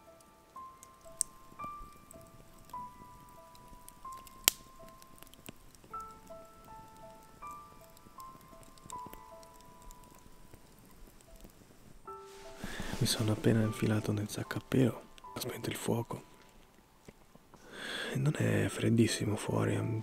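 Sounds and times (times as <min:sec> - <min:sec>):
burning logs popping: 0:00.0 - 0:20.0
campfire crackling: 0:00.0 - 0:20.0
soft slow background music: 0:00.0 - 0:20.0.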